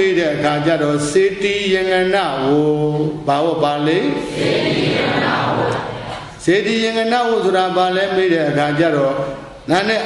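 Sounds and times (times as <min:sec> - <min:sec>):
monk chanting melodically: 0:00.0 - 0:04.3.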